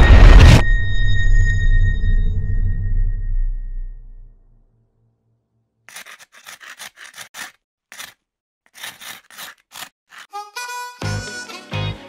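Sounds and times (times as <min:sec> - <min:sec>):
scraping strokes: 0:05.9 - 0:10.3.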